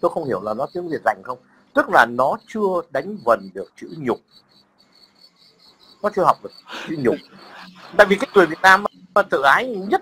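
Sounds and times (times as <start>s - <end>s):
man speaking: 0.0s - 4.2s, 6.0s - 10.0s
high-pitched insect chirping: 0.0s - 10.0s.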